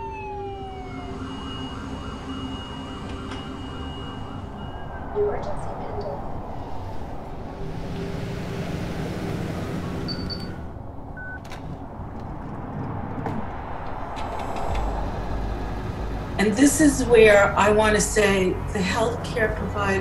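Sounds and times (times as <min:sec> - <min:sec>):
deep rumble: 0:00.0 - 0:20.0
steady low drone: 0:00.0 - 0:20.0.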